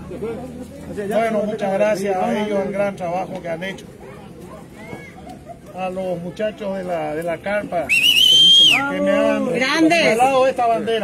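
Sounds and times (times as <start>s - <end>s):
loud shrill whistle: 7.9s - 8.9s.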